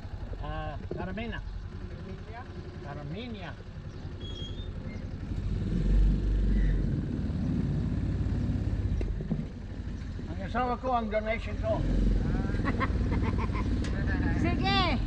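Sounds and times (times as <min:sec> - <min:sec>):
motorcycle engine idling and revving: 0:00.0 - 0:15.0.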